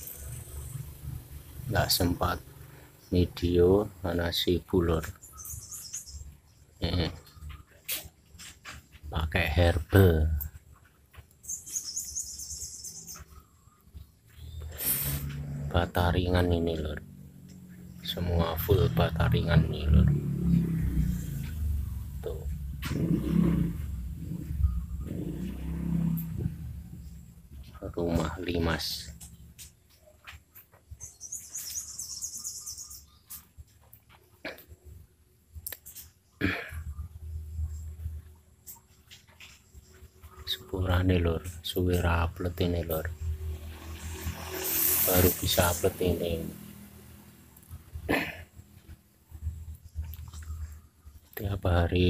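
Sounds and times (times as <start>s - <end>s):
birds chirping: 0.0s - 52.0s.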